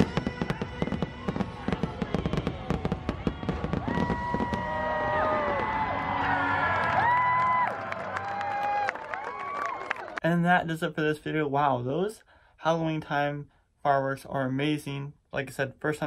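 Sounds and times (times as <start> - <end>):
fireworks popping and banging: 0.0 - 6.0.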